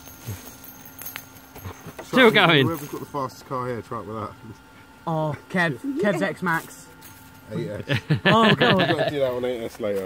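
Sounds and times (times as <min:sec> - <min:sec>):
fidget spinner humming: 0:00.0 - 0:10.0.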